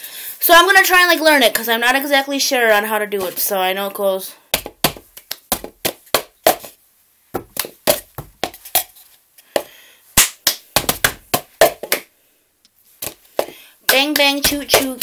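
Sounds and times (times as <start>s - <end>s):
hand claps: 10.2s - 12.1s.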